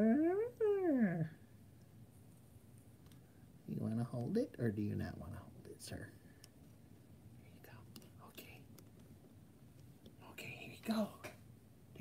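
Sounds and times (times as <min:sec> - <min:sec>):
faint plastic clicks: 0:03.0 - 0:03.3.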